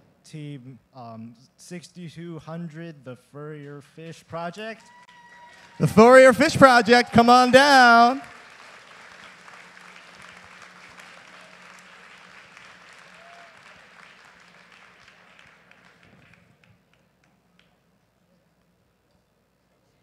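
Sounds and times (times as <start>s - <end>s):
faint audience applause: 4.8s - 17.8s.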